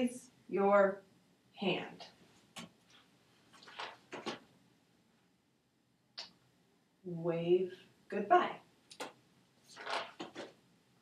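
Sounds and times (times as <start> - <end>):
soft rustles: 2.2 - 4.5.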